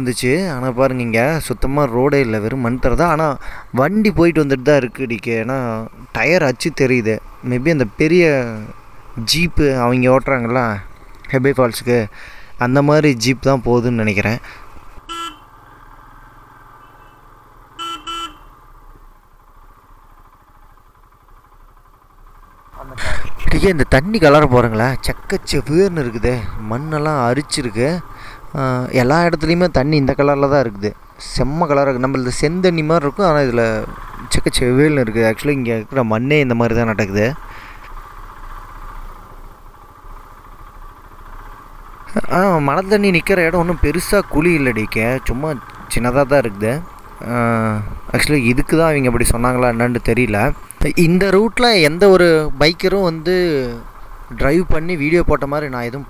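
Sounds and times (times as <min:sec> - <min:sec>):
motorcycle engine running: 0:00.0 - 0:56.0
horn toots: 0:15.0 - 0:15.9, 0:16.7 - 0:18.6.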